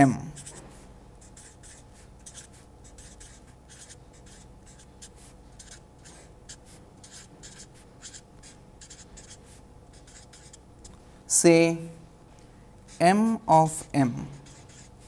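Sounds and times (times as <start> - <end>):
marker writing on paper: 0.3 - 11.0, 12.9 - 15.0.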